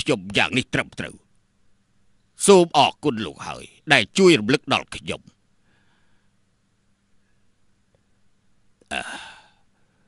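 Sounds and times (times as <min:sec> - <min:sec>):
person breathy vocal sound: 0:08.9 - 0:09.6.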